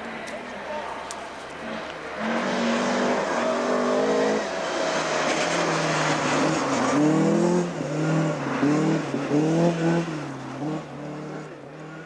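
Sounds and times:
car engine revving hard: 0:01.6 - 0:12.0.

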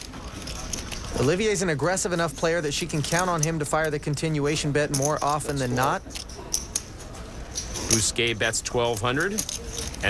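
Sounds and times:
poker chips clicking: 0:00.0 - 0:01.6, 0:02.8 - 0:08.0, 0:08.8 - 0:10.0.

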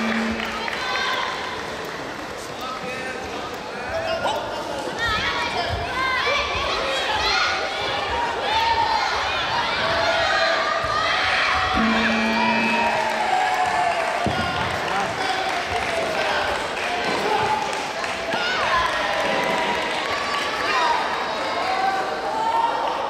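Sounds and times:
steady electronic tone: 0:00.0 - 0:00.8, 0:11.8 - 0:13.6.

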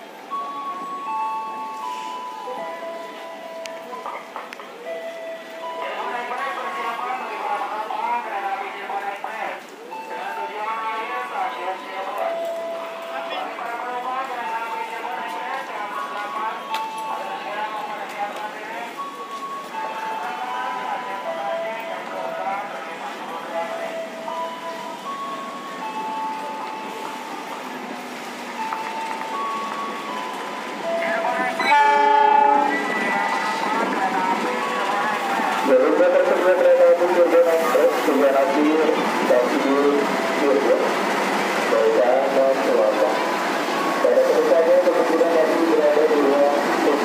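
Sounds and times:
crowd chatter: 0:00.0 - 0:47.0
diesel locomotive rolling in: 0:00.0 - 0:47.0
locomotive horn: 0:31.6 - 0:33.7.

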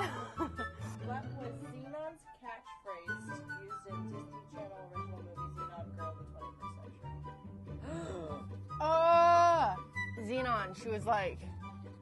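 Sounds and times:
background music with bass line: 0:06.0 - 0:12.0.

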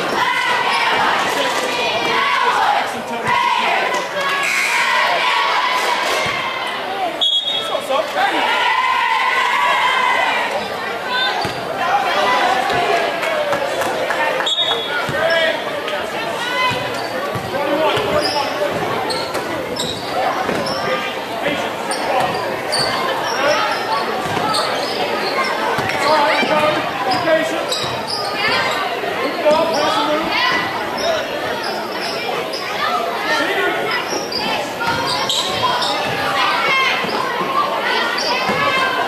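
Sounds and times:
people shouting: 0:00.0 - 0:06.6.

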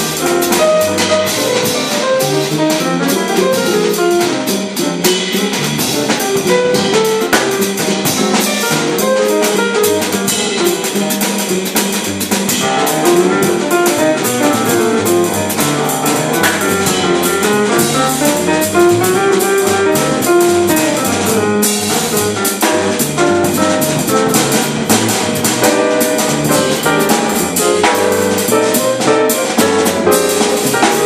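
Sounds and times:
drum kit played with sticks: 0:00.0 - 0:31.0
grand piano: 0:00.0 - 0:31.0
plucked double bass: 0:00.0 - 0:31.0.

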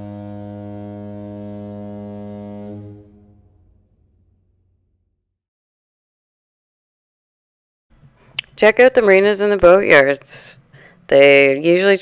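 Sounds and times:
low horn-like tone: 0:00.0 - 0:05.0.

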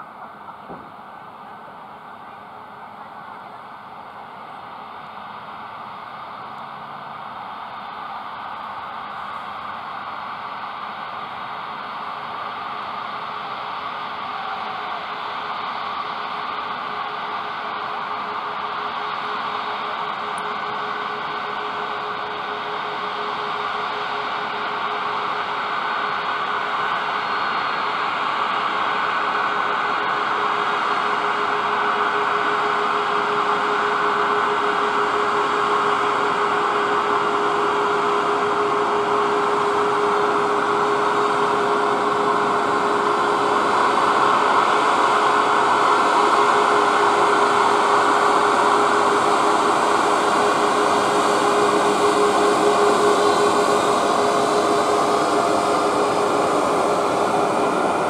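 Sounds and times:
jet engines whining: 0:00.0 - 0:58.0.

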